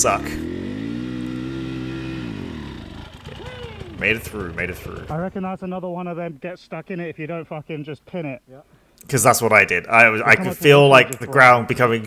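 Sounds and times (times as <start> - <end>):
dirt bike engine high revs: 0.0 - 5.4.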